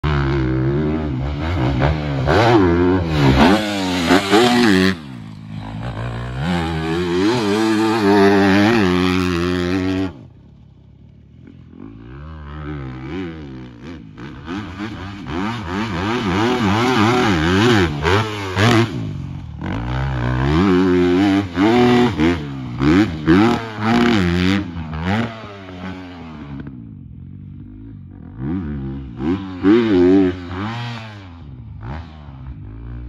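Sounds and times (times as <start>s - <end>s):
dirt bike engine revving: 0.0s - 33.0s.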